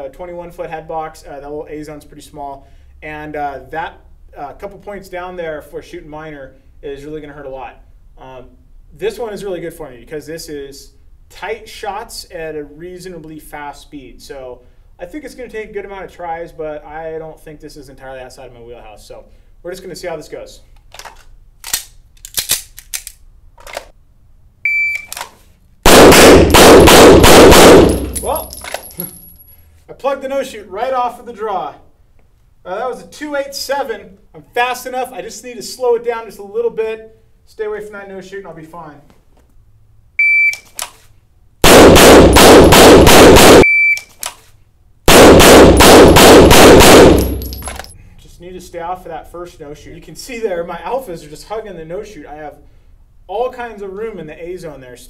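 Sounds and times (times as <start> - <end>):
metallic pistol handling clicks: 20.8 - 23.9, 27.8 - 29.5, 47.1 - 48.0
shot timer beep: 24.7 - 25.2, 40.2 - 40.7, 43.6 - 44.1
rapid pistol shots: 25.8 - 28.6, 41.6 - 43.6, 45.1 - 47.8.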